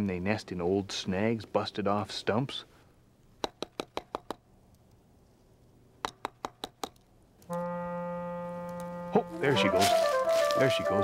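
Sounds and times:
stick rapping on tree trunk: 3.4 - 4.4, 6.0 - 7.0.

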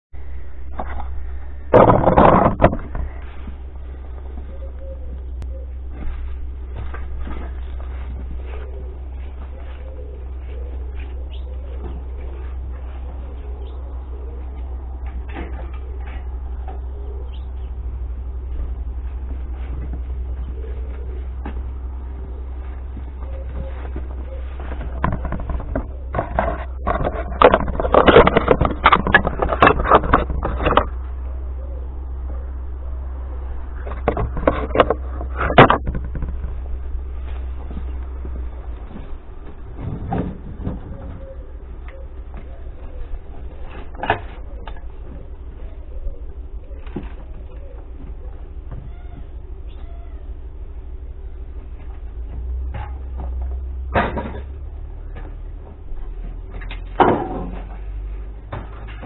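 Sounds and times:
steady low rumble: 0.1 - 59.0
rustling: 0.2 - 59.0.

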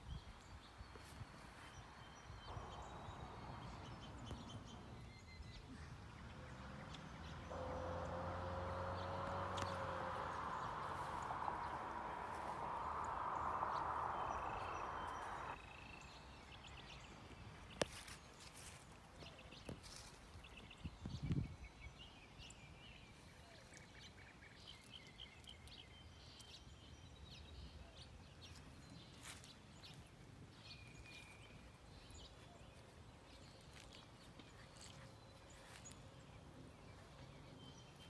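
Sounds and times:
bird chirps: 1.0 - 16.9
low rumble: 5.8 - 15.6.

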